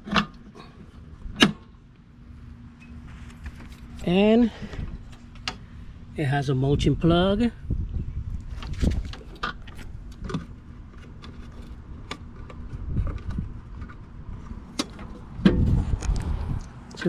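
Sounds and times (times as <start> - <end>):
low rumble: 12.6 - 16.9.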